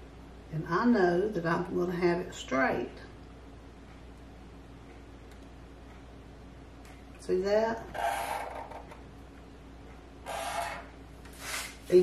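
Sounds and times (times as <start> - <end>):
pen scratching along ruler: 7.9 - 8.8, 10.3 - 10.9.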